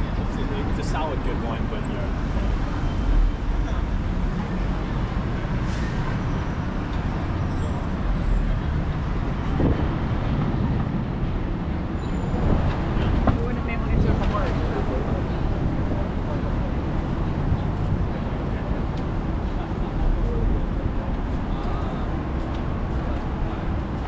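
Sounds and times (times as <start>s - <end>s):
pedestrians' voices: 0.0s - 24.0s
road traffic rumble: 0.0s - 24.0s.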